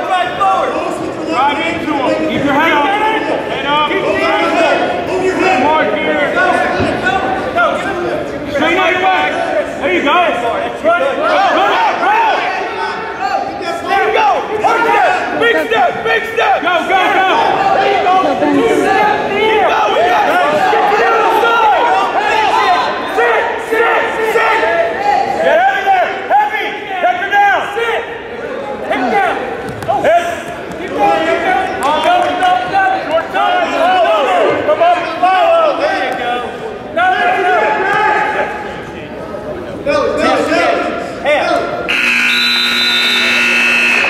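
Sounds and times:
crowd shouting: 0.0s - 38.7s, 41.9s - 44.0s.

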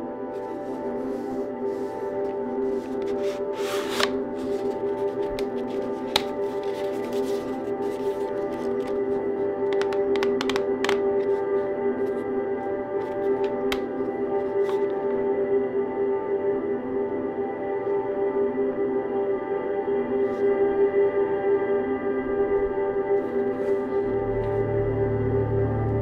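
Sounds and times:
soft ambient music: 0.0s - 26.0s
cardboard packaging rustling: 0.4s - 12.3s
plastic case clicks and taps: 6.1s - 6.4s, 9.7s - 11.1s, 13.4s - 13.9s.

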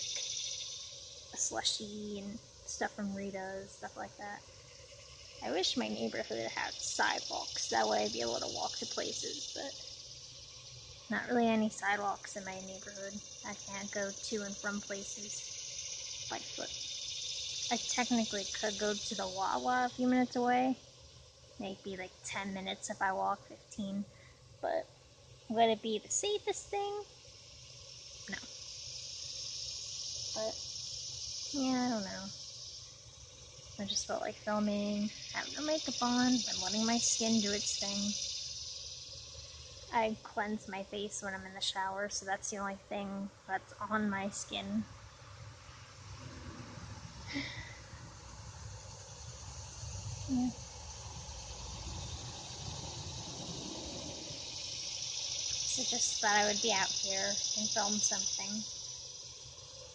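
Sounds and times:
high-pitched insect buzz: 0.0s - 59.9s
person speaking: 11.1s - 15.3s, 50.3s - 50.5s
low rumble: 46.1s - 48.8s.

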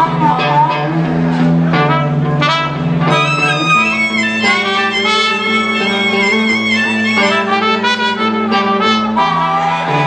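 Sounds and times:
blues band playing: 0.0s - 10.0s.

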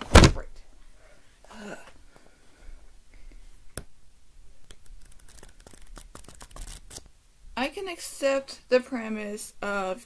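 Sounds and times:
book pages rustling: 4.6s - 7.1s
small paper clicks: 4.6s - 7.1s.

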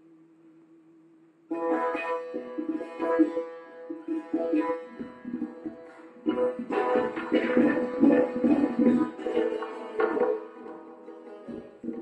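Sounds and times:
plucked string instrument: 1.5s - 12.0s.

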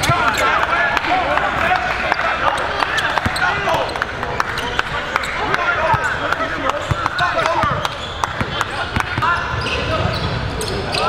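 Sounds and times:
crowd chatter in large hall: 0.0s - 11.0s
sneaker squeaks: 2.4s - 11.0s.

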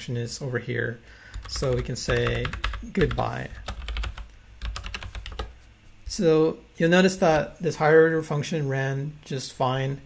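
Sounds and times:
keyboard keys clicking: 1.4s - 5.5s.

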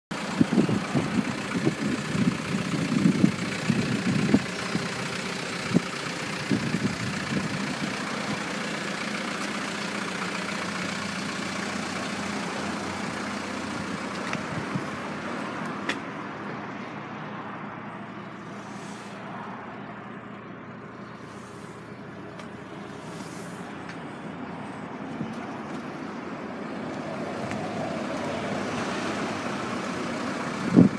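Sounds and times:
vehicle noise outdoors: 0.0s - 30.9s
wind buffeting microphone: 0.4s - 5.0s, 14.0s - 15.0s.

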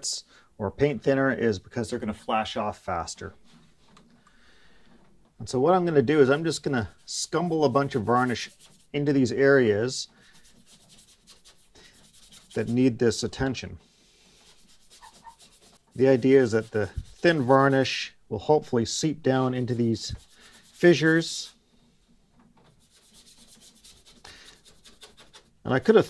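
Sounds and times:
brush scrubbing wood: 6.0s - 13.0s, 14.2s - 18.0s, 19.4s - 21.6s, 22.6s - 26.0s.

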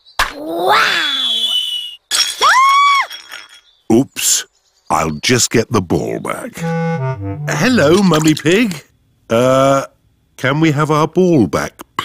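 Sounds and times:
cartoon whistling tone: 0.9s - 2.0s, 6.6s - 8.0s.

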